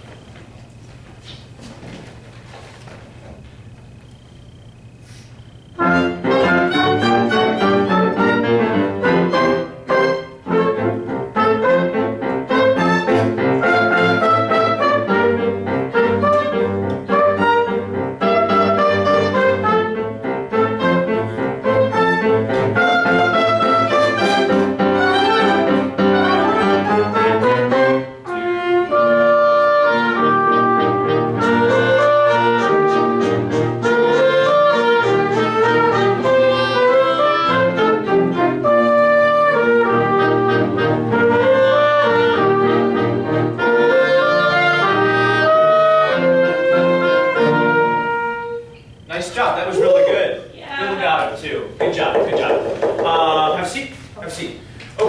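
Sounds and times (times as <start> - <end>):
small ensemble playing slow piece: 0.0 - 55.0
person speaking: 49.1 - 55.0.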